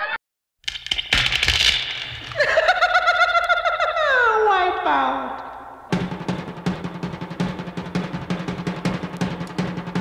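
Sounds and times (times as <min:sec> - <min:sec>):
laughter: 0:02.3 - 0:04.4.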